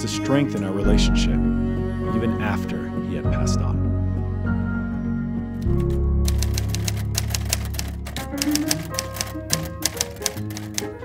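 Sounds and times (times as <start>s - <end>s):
background music with low tones: 0.0s - 11.0s
manual typewriter keys clacking: 5.6s - 11.0s.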